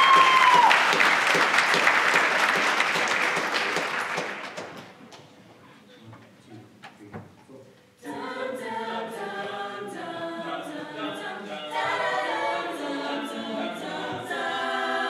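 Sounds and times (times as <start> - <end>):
choir singing in harmony: 8.0 - 15.0.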